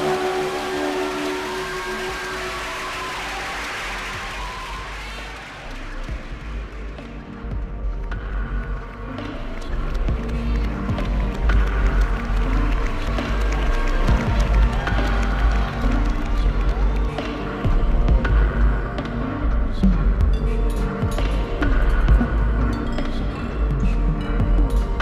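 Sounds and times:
steady deep bass: 3.8s - 25.0s.

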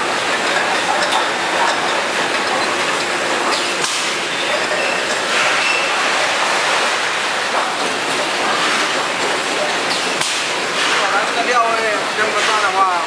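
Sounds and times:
packaging machine running: 0.0s - 13.0s.

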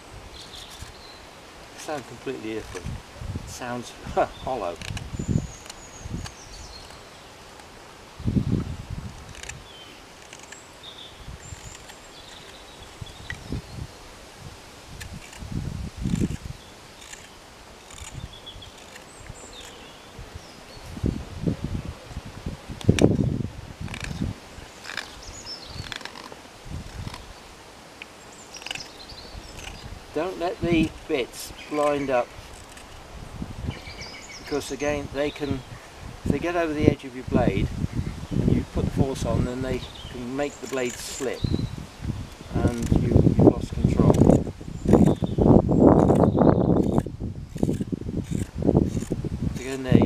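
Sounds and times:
wind rumbling on microphone: 0.0s - 50.0s
knife scraping wood: 4.3s - 7.8s, 9.1s - 10.7s, 11.4s - 13.4s, 15.0s - 19.9s, 23.8s - 27.3s, 28.0s - 33.1s, 40.2s - 41.4s.

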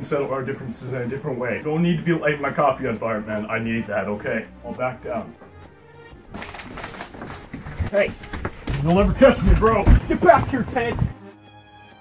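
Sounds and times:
hurried footsteps: 5.1s - 11.2s
camera rustling and knocking: 6.3s - 11.1s.

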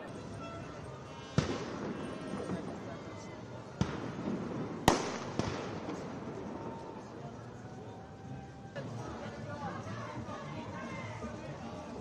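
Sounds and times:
crowd hubbub: 0.0s - 12.0s
firecracker bangs: 1.3s - 2.8s, 3.8s - 6.4s.

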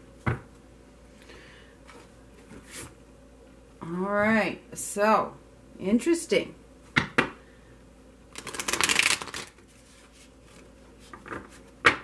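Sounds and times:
cards riffled: 8.4s - 9.6s.

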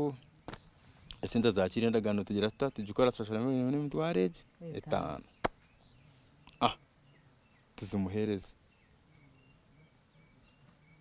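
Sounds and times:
faint bird chirps: 0.0s - 11.0s
man speaking: 1.2s - 5.2s.

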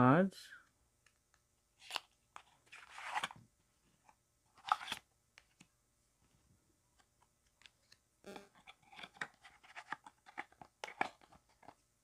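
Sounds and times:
cards shuffling: 1.8s - 3.4s, 4.5s - 5.7s, 7.4s - 11.8s.

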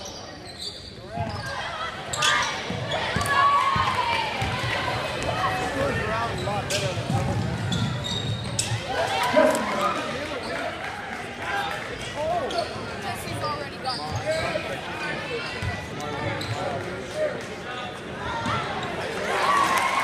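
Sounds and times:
spectators talking: 0.0s - 20.0s.

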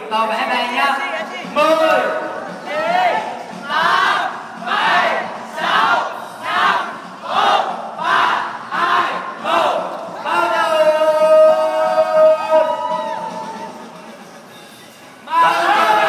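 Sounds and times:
crowd chanting in unison: 2.6s - 10.6s.

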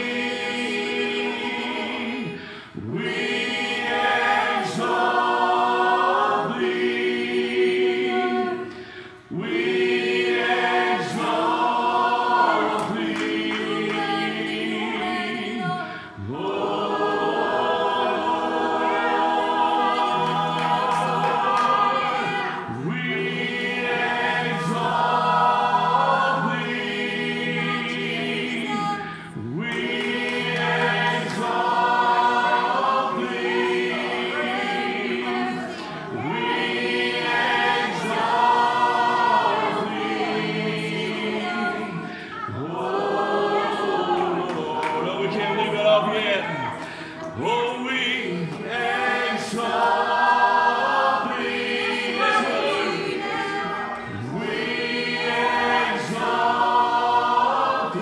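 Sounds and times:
voices singing worship chorus: 0.0s - 58.0s.

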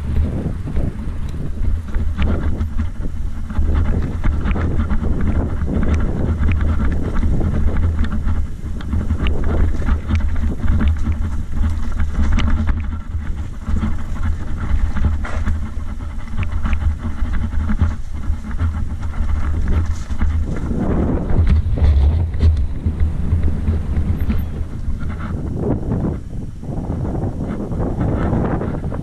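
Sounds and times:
bike tyres rattling over stones: 0.0s - 29.0s
wind rumble on microphone: 0.0s - 29.0s.

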